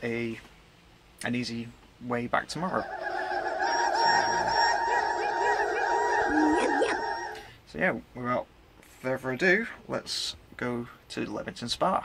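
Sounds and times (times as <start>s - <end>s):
chorus of birds calling: 2.6s - 7.6s.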